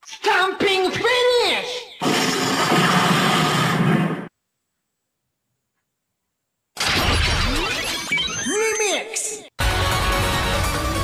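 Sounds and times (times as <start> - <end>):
toy belt noisy blast: 2.0 - 4.3.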